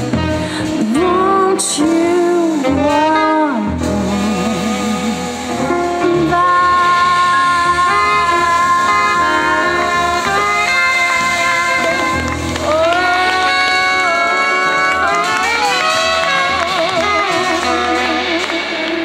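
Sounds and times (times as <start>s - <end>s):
live jazz band: 0.0s - 19.0s
woman singing: 0.0s - 19.0s.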